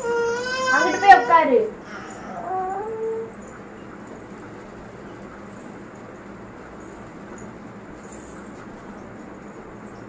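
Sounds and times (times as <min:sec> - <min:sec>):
baby whimpering cry: 0:00.0 - 0:03.3.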